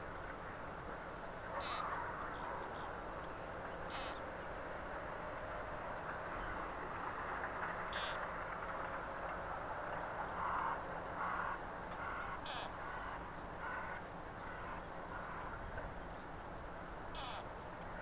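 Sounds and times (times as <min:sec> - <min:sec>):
chorus of calling animals: 0:01.4 - 0:03.0, 0:03.9 - 0:04.2, 0:10.4 - 0:15.6, 0:17.2 - 0:17.5
lower animal calls: 0:01.5 - 0:02.9, 0:03.9 - 0:04.2, 0:07.9 - 0:08.2, 0:10.4 - 0:15.5, 0:17.1 - 0:17.5.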